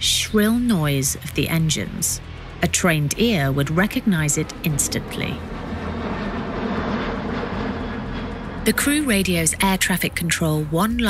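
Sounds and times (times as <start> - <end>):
aircraft engines droning overhead: 0.0 - 11.0
low hum: 0.0 - 11.0.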